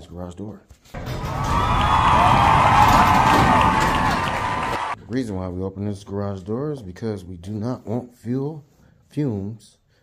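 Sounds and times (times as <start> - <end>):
garage door rollers rumbling: 1.0 - 4.7
high squeals: 1.0 - 5.0.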